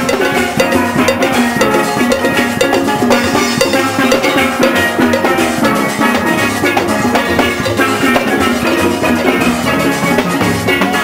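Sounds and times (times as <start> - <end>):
drums and percussion: 0.0 - 11.0
steel pans playing fast rhythm: 0.0 - 11.0.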